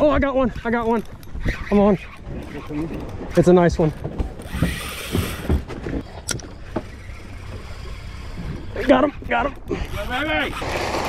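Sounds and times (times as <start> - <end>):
fishing reel clicks and thumps: 0.5 - 5.5, 6.2 - 11.0.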